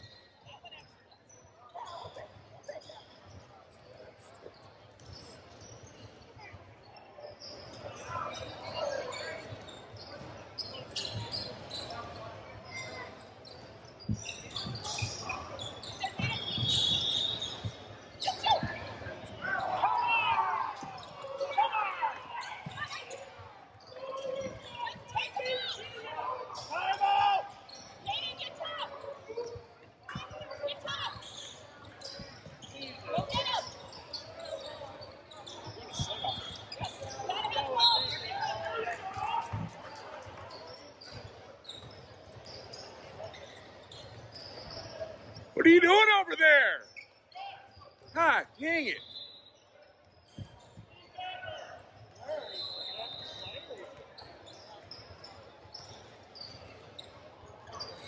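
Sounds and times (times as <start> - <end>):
people calling out: 45.6 - 46.8.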